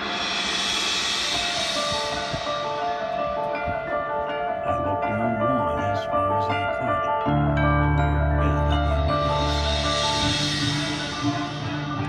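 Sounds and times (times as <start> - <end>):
cymbal wash: 0.0 - 4.4
marching band music: 0.0 - 12.0.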